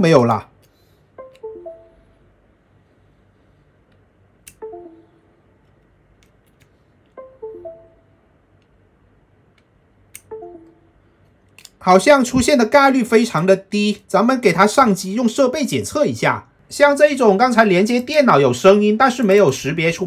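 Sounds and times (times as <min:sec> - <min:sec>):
computer notification chime: 0:01.2 - 0:02.2, 0:04.6 - 0:05.3, 0:07.2 - 0:08.3, 0:10.3 - 0:11.0.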